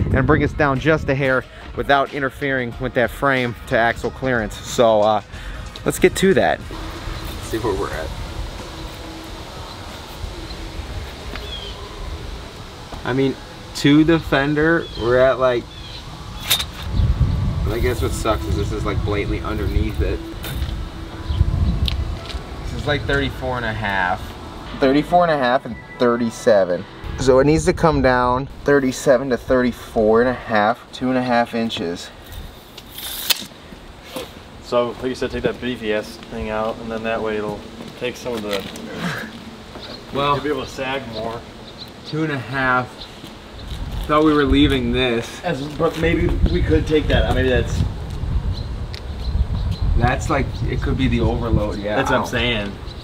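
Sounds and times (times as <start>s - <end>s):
low outdoor rumble: 5.4s - 31.0s
faint high chirp: 24.7s - 27.2s
tape measure retracting with snap: 32.8s - 33.5s.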